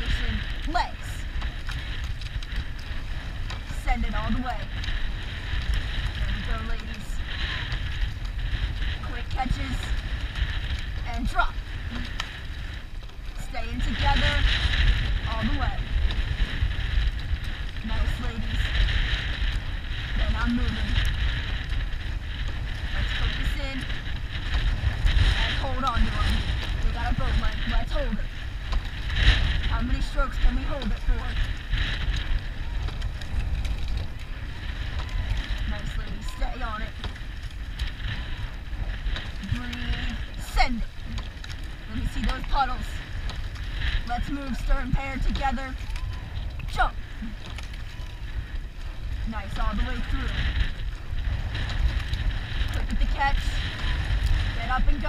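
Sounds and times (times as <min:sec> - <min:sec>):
water rushing and splashing: 0:00.0 - 0:55.0
wind buffeting microphone: 0:00.0 - 0:55.0.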